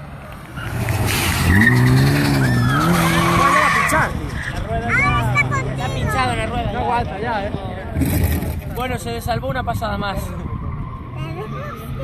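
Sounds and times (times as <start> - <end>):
car engine revving: 0.6 - 6.6
tyre squeal: 1.4 - 4.6
spectators whooping and shouting: 2.4 - 4.1.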